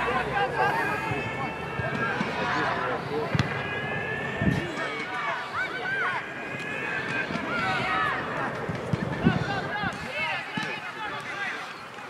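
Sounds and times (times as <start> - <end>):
players shouting: 0.0 - 12.0.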